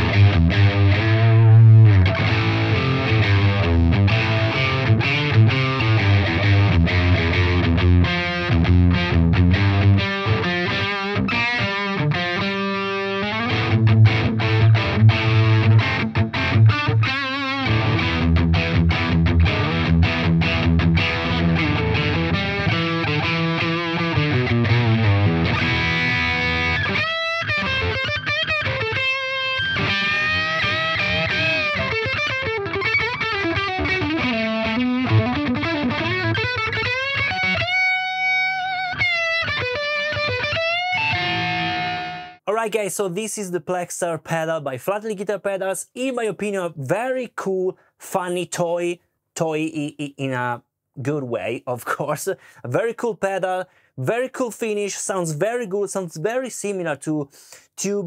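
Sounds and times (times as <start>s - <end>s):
overdriven electric guitar: 0.0s - 42.5s.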